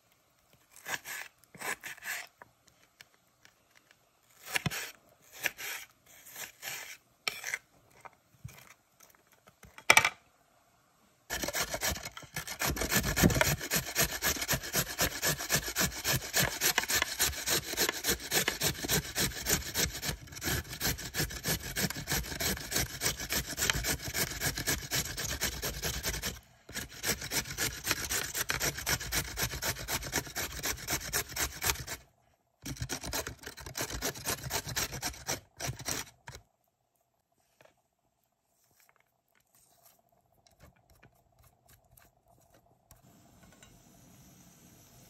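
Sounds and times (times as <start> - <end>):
carrot rasping on metal grater: 0.7 - 2.4, 4.3 - 7.6, 11.3 - 32.0, 32.6 - 36.4.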